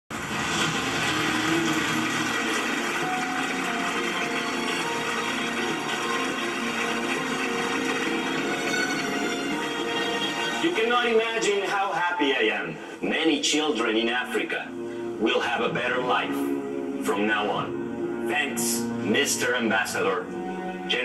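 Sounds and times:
crowd applauding: 0.1 - 10.7
music: 0.1 - 21.0.

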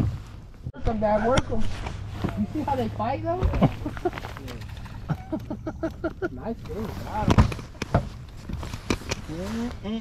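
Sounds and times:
voices talking: 0.8 - 7.7.

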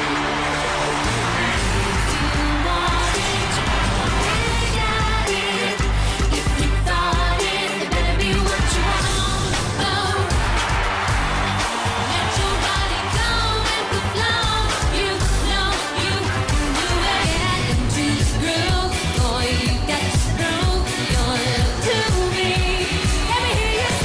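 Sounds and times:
pop song with singing: 0.0 - 24.0.

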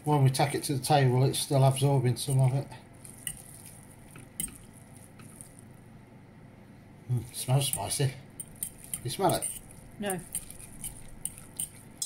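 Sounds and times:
kitchen fan humming: 0.0 - 12.0
noodles squelching while stirred: 1.4 - 5.8, 7.2 - 12.0
utensil clicking against pot: 7.6 - 12.0.

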